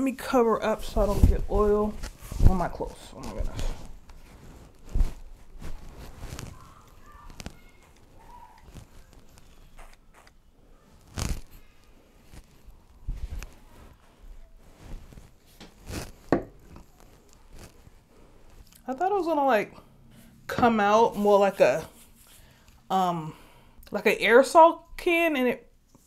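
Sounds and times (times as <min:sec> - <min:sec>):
hands rubbing hair and towel: 0:00.3 - 0:10.3, 0:11.0 - 0:18.7.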